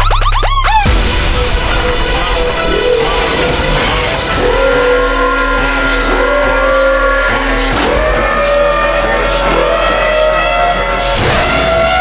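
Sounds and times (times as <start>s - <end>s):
electronic trap music: 0.0s - 12.0s.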